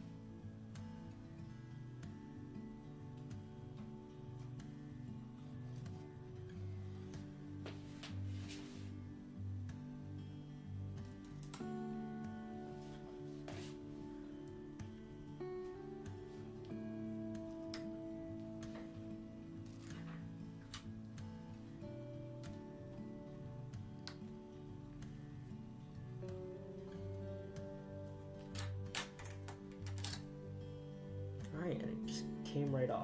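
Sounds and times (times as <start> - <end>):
guitar background music: 0.0 - 33.0.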